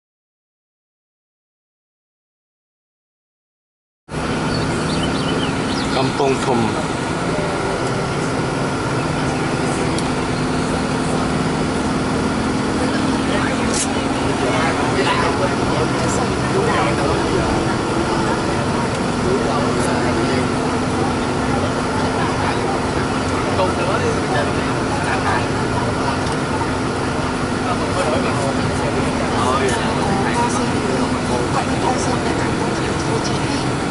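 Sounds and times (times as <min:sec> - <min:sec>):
vehicle engine hum and road noise: 0:04.1 - 0:33.9
voices: 0:04.2 - 0:33.9.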